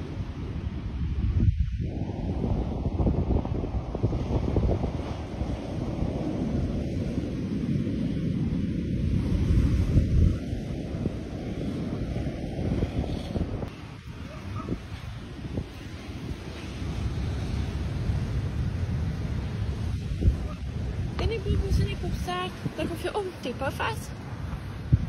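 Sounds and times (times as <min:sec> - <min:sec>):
wind buffeting microphone: 0:00.0 - 0:25.0
surf breaking on beach: 0:01.8 - 0:25.0.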